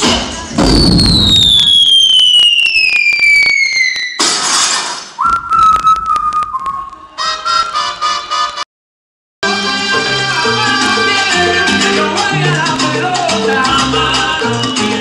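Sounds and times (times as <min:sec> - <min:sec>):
noisy burst: 0:00.3 - 0:05.2
falling whistle: 0:00.6 - 0:04.2, 0:05.2 - 0:07.9
held whistle tone: 0:00.6 - 0:04.2, 0:05.2 - 0:07.9.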